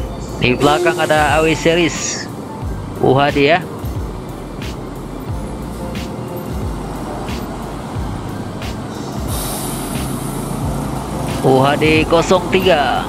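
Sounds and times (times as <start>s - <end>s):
background music: 0.0s - 13.0s
bus diesel engine rumbling: 0.0s - 13.0s.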